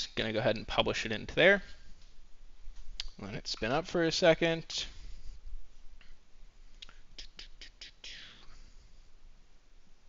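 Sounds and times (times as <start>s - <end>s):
breathy hiss: 6.6s - 9.2s.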